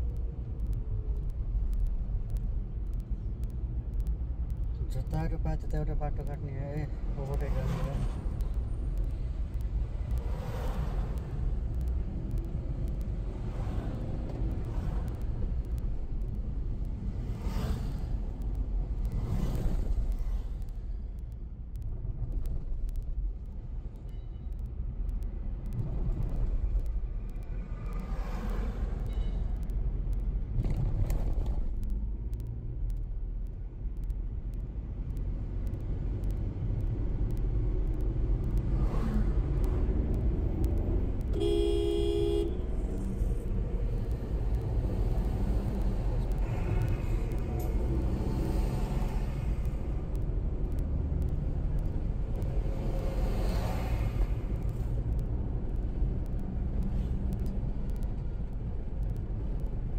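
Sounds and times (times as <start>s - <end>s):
road and engine rumble: 0.0s - 59.9s
vehicle horn toot: 41.4s - 42.6s.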